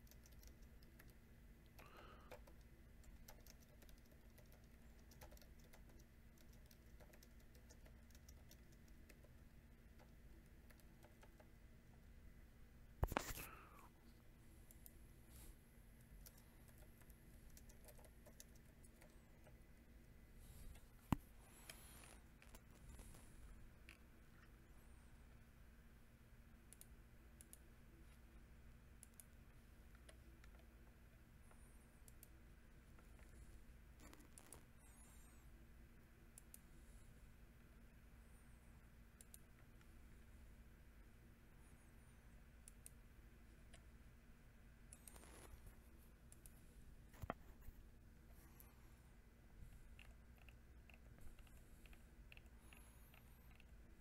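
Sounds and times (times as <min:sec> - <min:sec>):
faint irregular ticks: 0:00.0 - 0:12.0, 0:13.0 - 0:19.8, 0:20.4 - 0:24.7, 0:26.5 - 0:35.5, 0:36.2 - 0:40.4, 0:41.6 - 0:44.0, 0:44.8 - 0:48.9, 0:49.6 - 0:54.0
small faint clicks: 0:00.0 - 0:12.0, 0:26.6 - 0:34.7, 0:36.3 - 0:36.7, 0:39.1 - 0:39.9, 0:42.4 - 0:44.0, 0:44.9 - 0:47.5, 0:49.6 - 0:54.0
low steady hum: 0:00.0 - 0:54.0.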